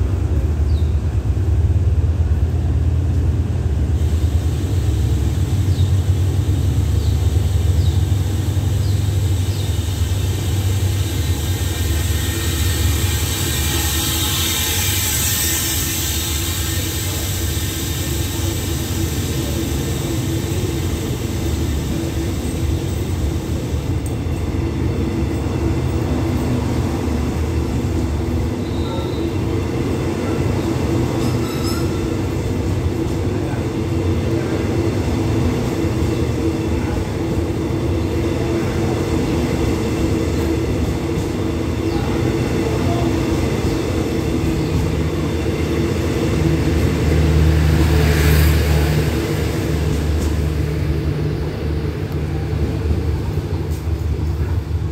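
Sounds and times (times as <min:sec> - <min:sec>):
train hiss: 0:00.0 - 0:54.9
train wheels rumbling on rails: 0:00.0 - 0:54.9
faint high squeals: 0:31.2 - 0:32.2.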